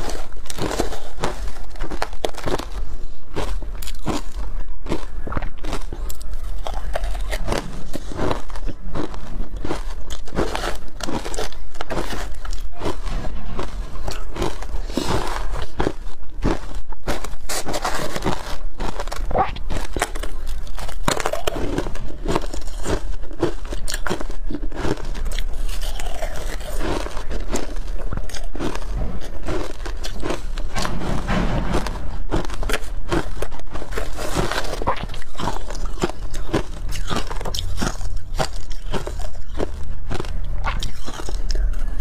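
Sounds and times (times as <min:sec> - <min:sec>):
crunching ice: 0:00.0 - 0:42.0.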